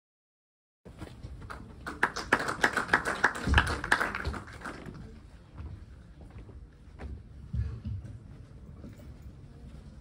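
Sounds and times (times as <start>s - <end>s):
audience hand clapping: 1.4s - 5.0s.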